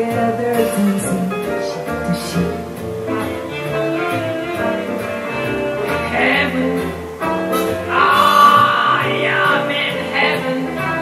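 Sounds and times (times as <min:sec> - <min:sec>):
woman singing into a microphone: 0:00.0 - 0:02.6, 0:07.9 - 0:11.0
acoustic guitar accompaniment: 0:00.0 - 0:11.0.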